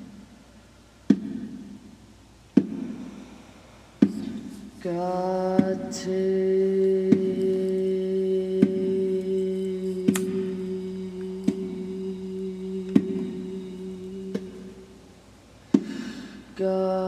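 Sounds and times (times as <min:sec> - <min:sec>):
light bongo taps: 0:01.1 - 0:01.5
singer holding low note: 0:04.8 - 0:15.0.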